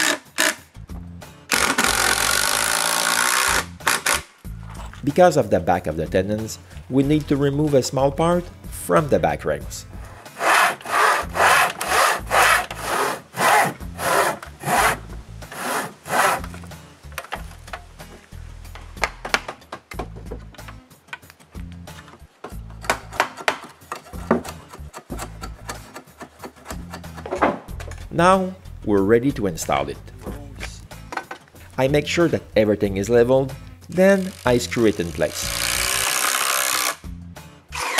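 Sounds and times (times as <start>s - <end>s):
saw cutting wood: 0.0s - 0.6s, 1.5s - 4.3s, 10.0s - 16.7s, 33.9s - 37.0s
chisel scraping wood: 10.0s - 16.7s, 22.7s - 27.4s.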